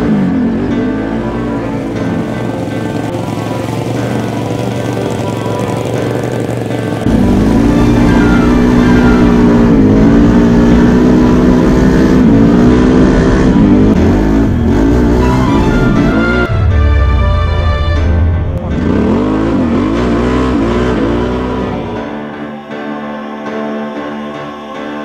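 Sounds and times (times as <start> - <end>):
atv engine running: 0.0 - 22.3
background music: 0.0 - 25.0.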